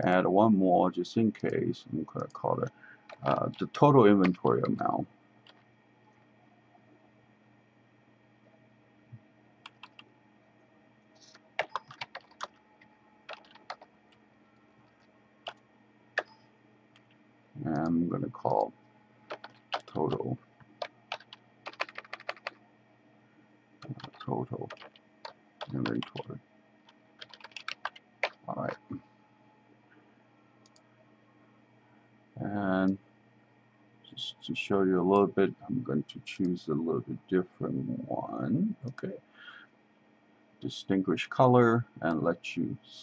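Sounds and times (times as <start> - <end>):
faint steady hum: 0.0 - 43.0
computer keyboard keystrokes: 4.2 - 4.8, 9.7 - 10.1, 11.3 - 12.6, 13.3 - 13.9, 16.2 - 16.4, 19.3 - 20.2, 20.8 - 22.6, 23.8 - 26.3, 26.9 - 28.8.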